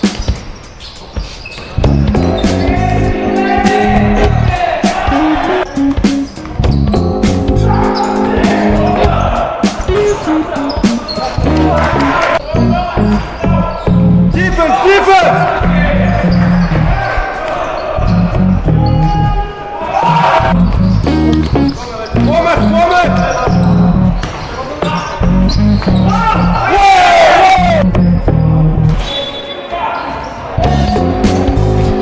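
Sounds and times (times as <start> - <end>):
music with heavy bass beat: 1.8 - 13.3, 30.6 - 32.0.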